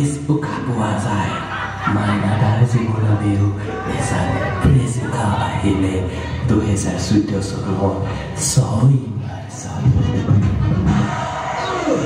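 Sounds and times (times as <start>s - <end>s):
man talking: 0.0s - 10.3s
audience chuckling: 1.0s - 3.2s.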